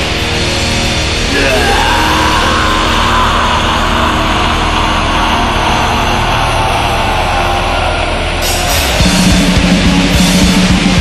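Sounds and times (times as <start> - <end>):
harsh distorted droning noise: 0.0 - 11.0
whining tone sinking in pitch: 1.3 - 9.4.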